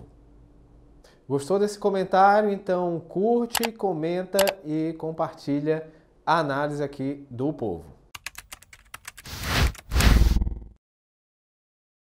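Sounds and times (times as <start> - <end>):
sharp clicks: 3.5 - 3.8, 4.4 - 4.6.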